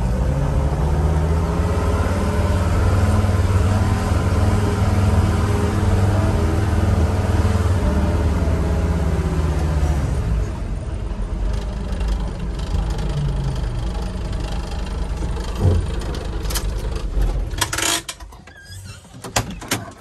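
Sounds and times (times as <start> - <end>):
diesel engine running: 0.0 - 18.2.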